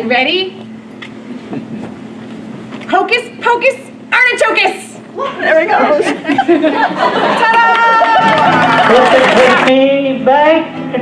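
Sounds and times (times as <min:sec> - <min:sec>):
woman speaking: 0:00.0 - 0:00.6, 0:02.9 - 0:06.1.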